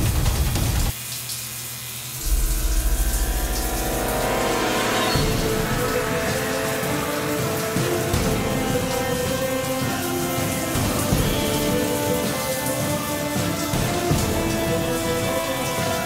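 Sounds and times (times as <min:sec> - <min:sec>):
background music with heavy bass: 0:02.2 - 0:12.1.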